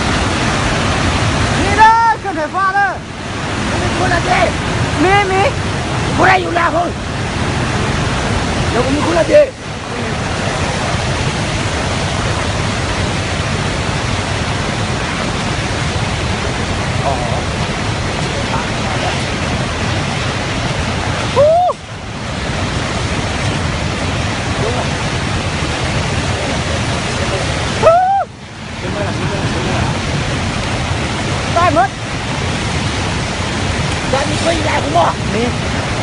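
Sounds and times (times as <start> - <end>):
floodwater rushing: 0.0 - 36.0
person shouting: 21.4 - 21.8, 27.8 - 28.3.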